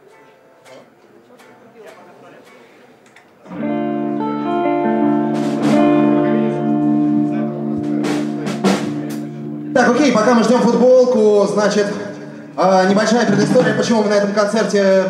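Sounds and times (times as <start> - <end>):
electric guitar through amplifier: 3.4 - 14.6.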